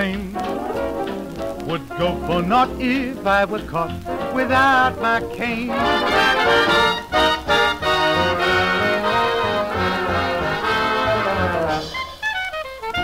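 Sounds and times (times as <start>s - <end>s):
brass chords: 0.0s - 13.0s
swing orchestra playing: 0.0s - 13.0s.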